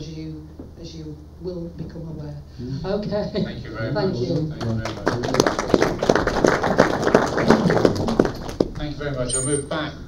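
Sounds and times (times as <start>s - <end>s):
hands clapping: 4.4s - 8.9s.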